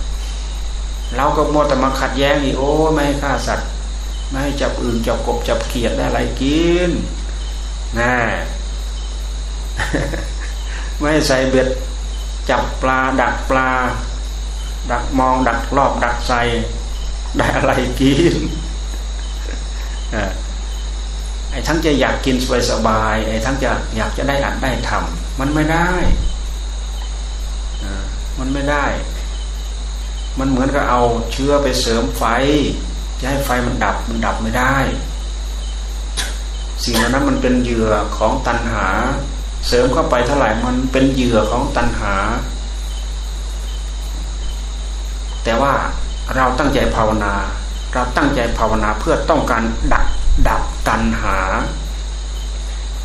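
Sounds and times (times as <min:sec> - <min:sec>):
high-pitched insect chirring: 0:00.0 - 0:53.0
low hum: 0:00.0 - 0:53.0
man speaking: 0:01.1 - 0:07.2, 0:07.9 - 0:08.7, 0:09.8 - 0:14.2, 0:14.8 - 0:18.8, 0:19.5 - 0:20.5, 0:21.5 - 0:26.3, 0:27.8 - 0:29.3, 0:30.4 - 0:35.1, 0:36.2 - 0:42.6, 0:45.4 - 0:51.9.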